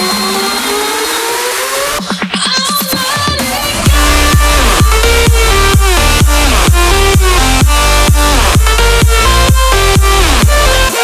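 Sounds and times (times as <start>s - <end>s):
synth riser climbing in pitch: 0.0s - 2.3s, 3.6s - 11.0s
electronic dance beat: 0.0s - 11.0s.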